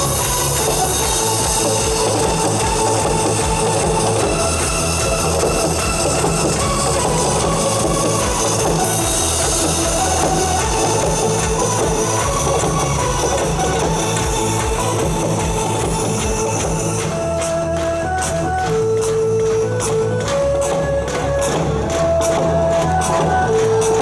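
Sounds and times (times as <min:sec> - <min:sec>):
electronic dance beat: 0:00.0 - 0:24.0.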